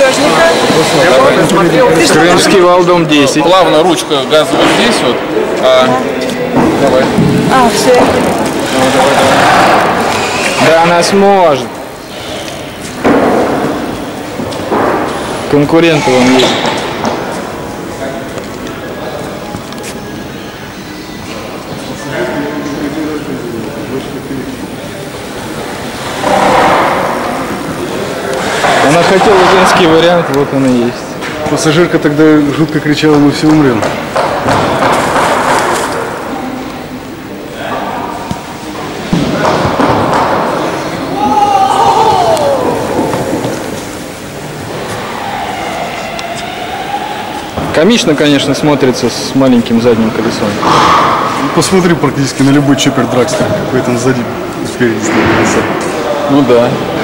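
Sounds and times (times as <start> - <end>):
indistinct voices in a hall: 0.0 - 57.0
sudden thump: 6.6 - 7.5.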